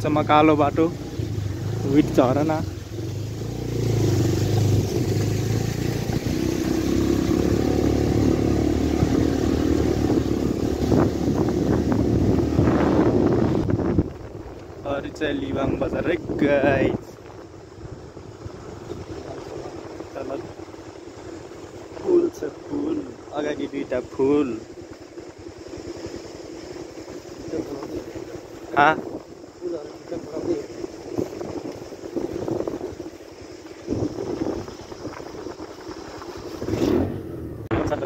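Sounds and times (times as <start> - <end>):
vehicle rumbling on road: 0.0 - 38.0
wind on microphone: 0.9 - 20.7, 26.8 - 38.0.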